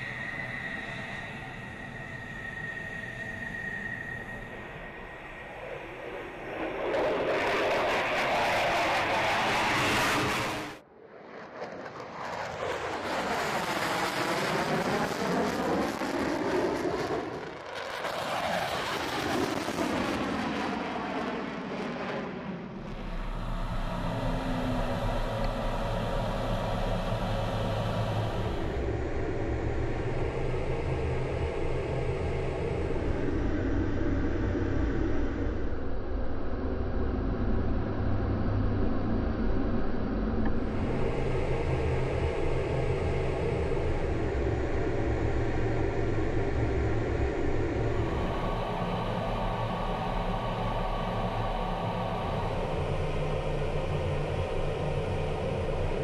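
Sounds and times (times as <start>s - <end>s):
fighter jet flying past: 0.0s - 35.6s
cockpit engine drone: 0.0s - 56.0s.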